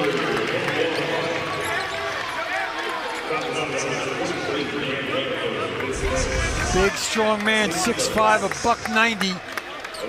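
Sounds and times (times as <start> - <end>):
indistinct voices and chatter: 0.0 - 10.0.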